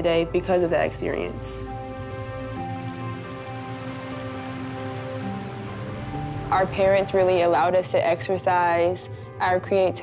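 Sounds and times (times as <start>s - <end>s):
soft music of held chords: 0.0s - 10.0s
creek water rushing over rocks: 1.7s - 7.7s.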